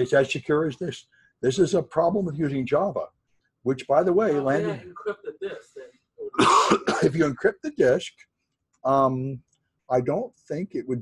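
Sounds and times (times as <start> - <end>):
person coughing: 4.4 - 4.8, 6.4 - 7.5.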